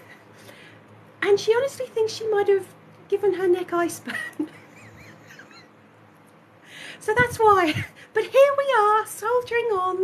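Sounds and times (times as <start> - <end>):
electric fan running: 0.0 - 10.0.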